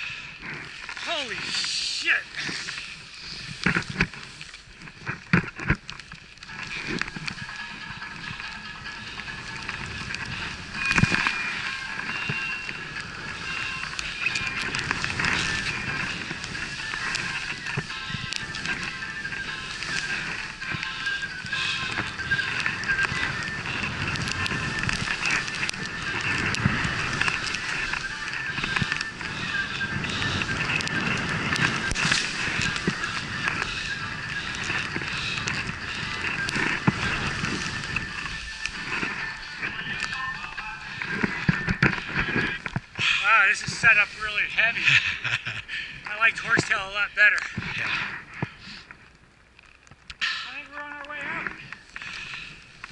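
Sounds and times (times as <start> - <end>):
skis through powder snow: 0.0 - 49.0, 50.6 - 52.9
wind rushing over microphone: 0.0 - 49.2.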